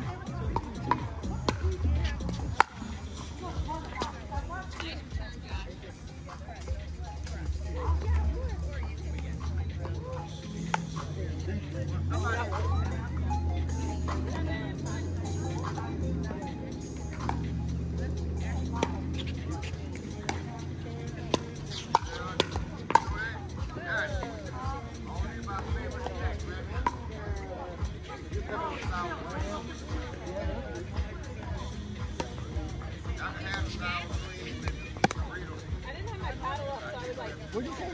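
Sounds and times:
distant chatter: 0.0s - 37.9s
music: 0.0s - 37.9s
paddles striking plastic ball: 35.0s - 35.2s.

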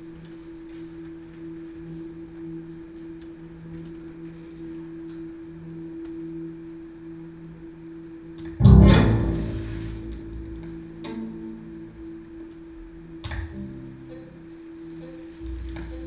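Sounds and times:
low musical drone: 8.4s - 16.0s.

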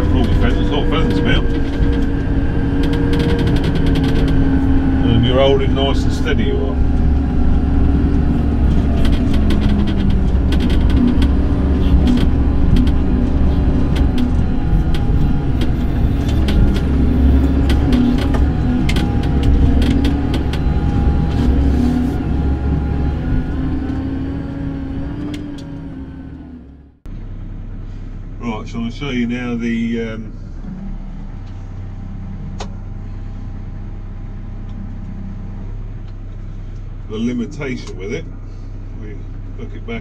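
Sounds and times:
cab rattling and knocking: 0.0s - 24.2s
tractor engine drone: 0.0s - 40.0s.

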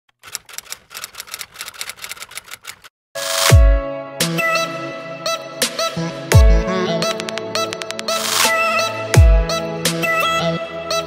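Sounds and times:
typewriter key clicks: 0.1s - 2.9s.

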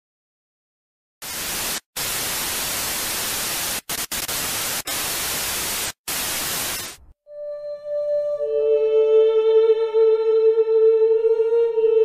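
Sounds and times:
television static hiss: 1.2s - 7.0s.

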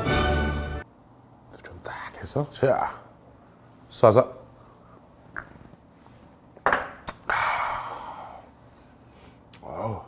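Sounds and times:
glass thud on wooden table: 6.6s - 7.0s.

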